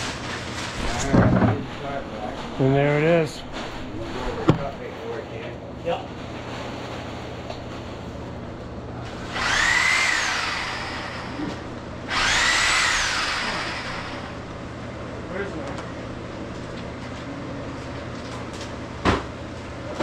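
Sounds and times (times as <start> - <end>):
power tool whining: 9.1 - 14.6.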